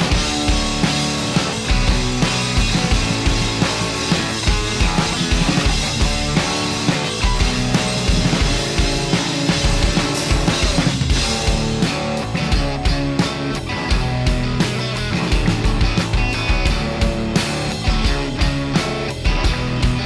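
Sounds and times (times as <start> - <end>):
bass guitar: 0.0 - 20.0
drum kit steady beat: 0.0 - 20.0
electric guitar strumming: 0.0 - 20.0.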